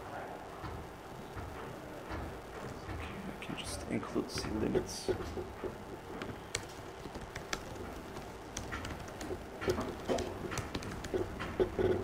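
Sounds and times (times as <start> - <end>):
laptop keyboard typing: 3.5 - 12.0.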